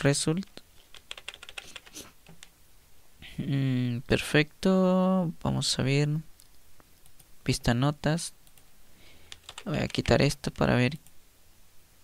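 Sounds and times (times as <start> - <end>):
computer keyboard keys clicking: 0.8 - 2.5, 9.3 - 10.2.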